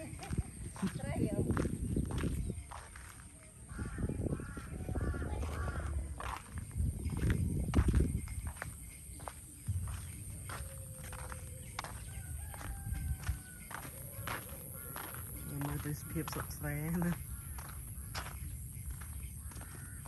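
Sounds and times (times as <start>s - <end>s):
footsteps on muddy dirt: 0.0s - 20.0s
low rumbling thumps: 4.2s - 8.8s.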